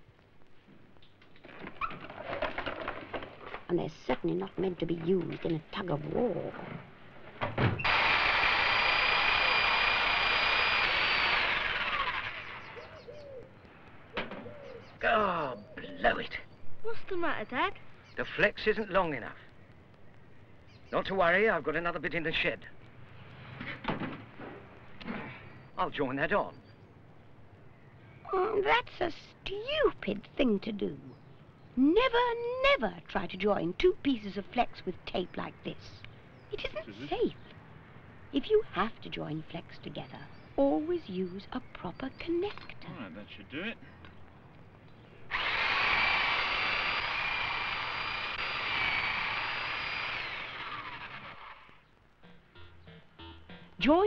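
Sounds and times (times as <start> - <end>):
knocks and rustles: 0.6 - 5.8, 6.4 - 7.9, 23.6 - 24.7
electric hedge trimmer whine: 7.8 - 13.0, 45.3 - 51.8.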